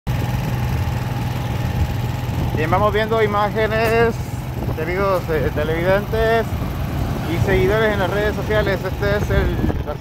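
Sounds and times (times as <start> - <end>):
vehicle engine hum and road noise: 0.1 - 10.0.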